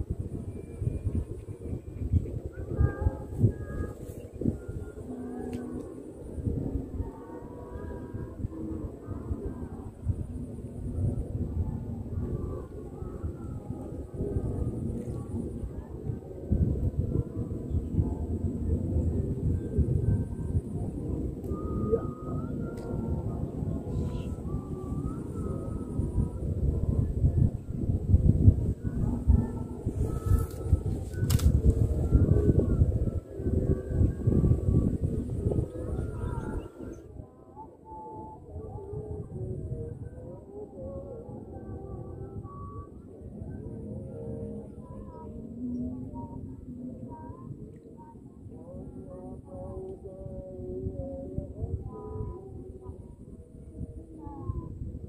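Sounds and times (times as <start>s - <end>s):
faint wavering high tones: 0.0s - 55.0s
wind buffeting microphone: 0.0s - 55.0s.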